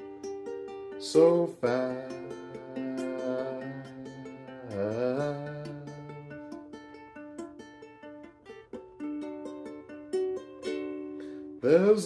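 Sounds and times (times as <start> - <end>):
ukulele picked notes: 0.0 - 12.0.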